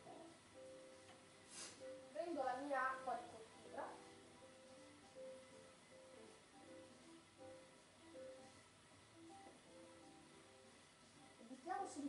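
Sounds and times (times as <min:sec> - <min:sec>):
faint television music: 0:00.0 - 0:12.0.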